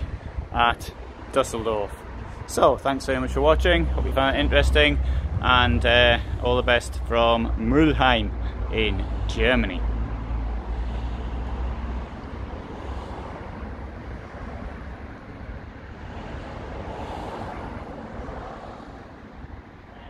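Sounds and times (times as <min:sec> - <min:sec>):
road traffic going by: 0:00.0 - 0:20.0
vehicle passing: 0:01.9 - 0:20.0
strong low rumble: 0:03.3 - 0:10.7.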